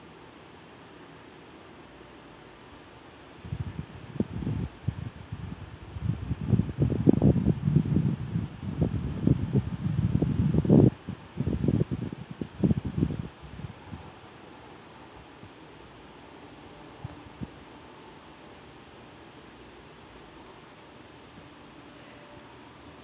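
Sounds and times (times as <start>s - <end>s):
wind buffeting microphone: 3.4s - 14.3s.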